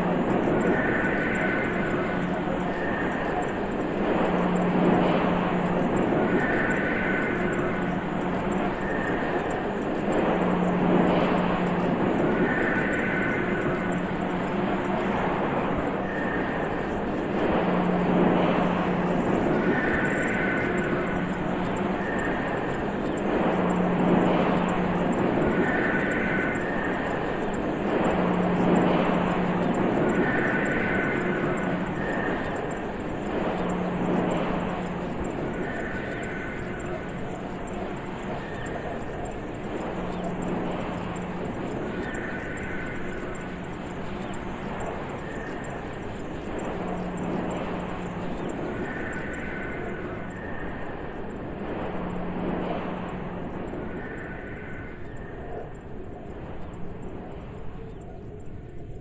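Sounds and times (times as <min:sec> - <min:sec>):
low hum: 0:00.0 - 0:59.0
rushing machine noise drone: 0:00.0 - 0:59.0.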